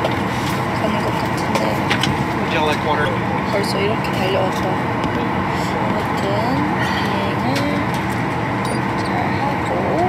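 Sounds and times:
airliner cabin drone: 0:00.0 - 0:10.0.

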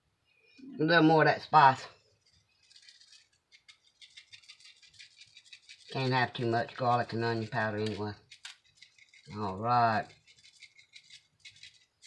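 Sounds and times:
spice shaker rattling: 0:02.2 - 0:12.0.

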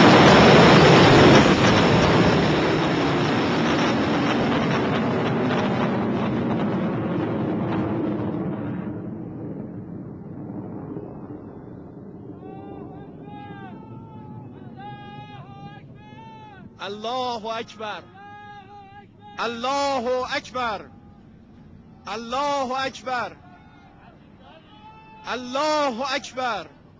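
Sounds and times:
rocket exhaust rushing: 0:00.0 - 0:17.7
person's voice: 0:16.8 - 0:20.9, 0:22.1 - 0:23.4, 0:25.3 - 0:26.7.

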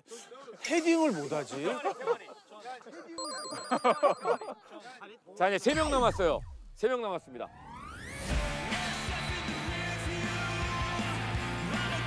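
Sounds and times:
people talking and laughing: 0:00.0 - 0:05.6
electronic trilling warble: 0:03.2 - 0:04.5.

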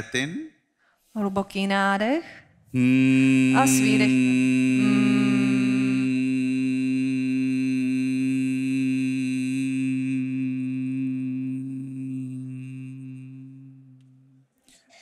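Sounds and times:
man humming low steady note: 0:02.8 - 0:14.4.

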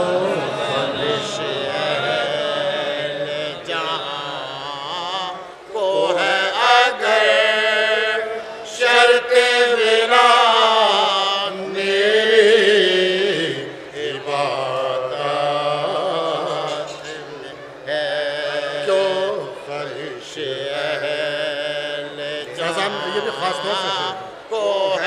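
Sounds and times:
man chanting unaccompanied: 0:00.0 - 0:25.0.

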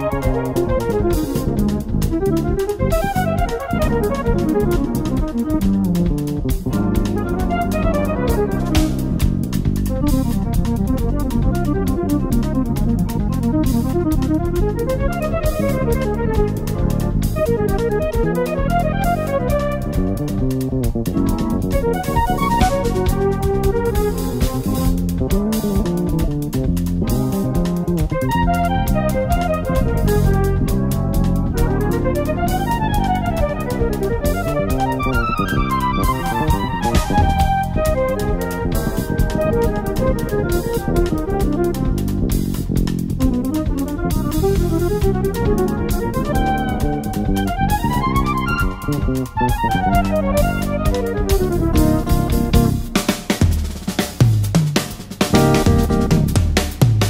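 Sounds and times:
jazz guitar playing: 0:00.0 - 0:54.4, 0:55.2 - 0:57.0
bass guitar line: 0:00.0 - 0:54.6, 0:55.2 - 0:57.0
drums with cymbal strikes: 0:00.0 - 0:57.0.

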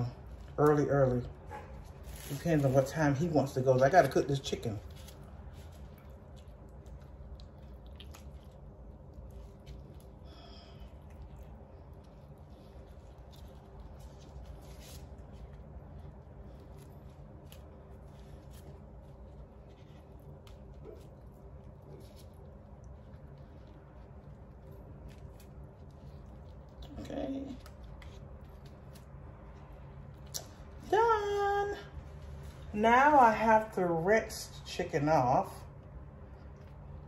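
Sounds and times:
low hum: 0:00.0 - 0:37.0
wet squishes of raw chicken: 0:04.4 - 0:15.0.

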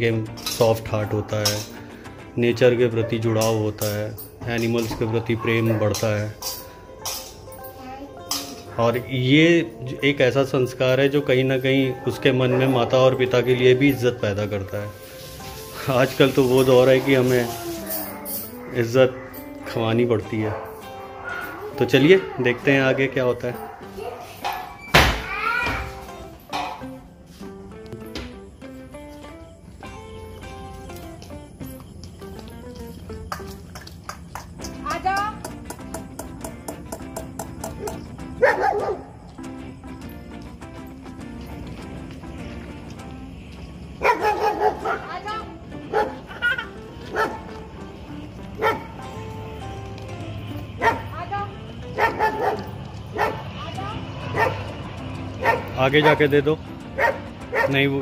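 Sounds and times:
background music: 0:00.0 - 0:58.0
dog barking and yipping: 0:04.6 - 0:06.4, 0:11.6 - 0:14.6, 0:15.8 - 0:26.0, 0:37.6 - 0:39.3, 0:44.0 - 0:47.8, 0:48.5 - 0:49.1, 0:50.8 - 0:58.0
child's high-pitched vocal sound: 0:07.7 - 0:08.6, 0:17.4 - 0:18.6.

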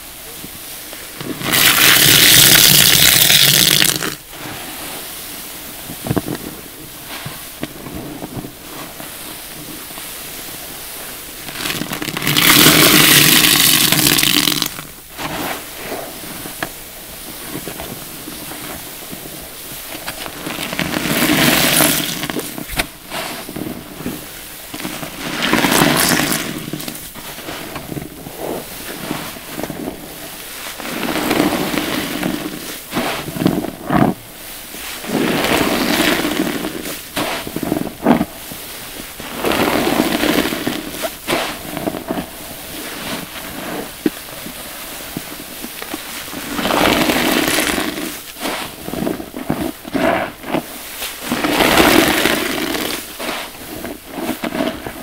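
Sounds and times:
foam crackling: 0:00.0 - 0:55.0.

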